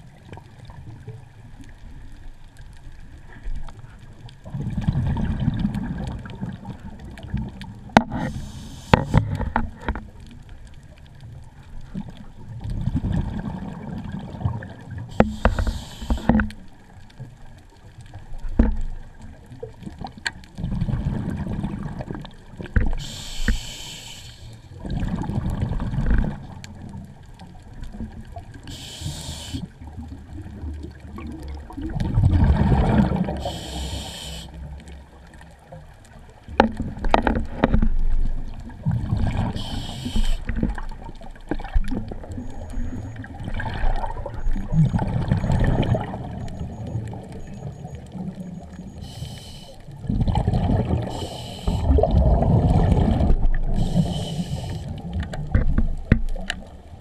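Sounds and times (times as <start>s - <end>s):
regulator hissing inhalation: 8.2s - 9.2s, 15.1s - 16.4s, 23.0s - 24.6s, 28.7s - 29.7s, 33.4s - 34.6s, 39.6s - 40.5s, 49.0s - 49.8s, 51.1s - 52.0s, 53.8s - 55.0s
bubbling exhaled air: 12.8s - 16.4s, 30.5s - 34.5s, 48.9s - 55.2s.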